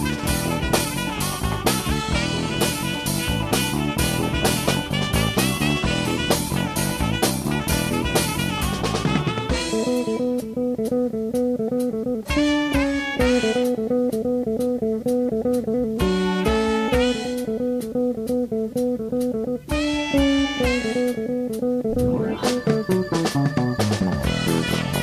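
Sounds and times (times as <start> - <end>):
bass guitar: 0.0 - 25.0
drum kit beat: 0.0 - 25.0
guitar chords: 0.0 - 25.0
short melodic figure: 19.9 - 25.0.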